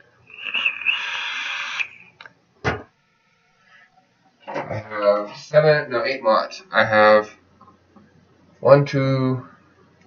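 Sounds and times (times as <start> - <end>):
vape airflow hiss with coil sizzling: 0.2 - 2.3
vapour puff blown out: 0.3 - 2.2.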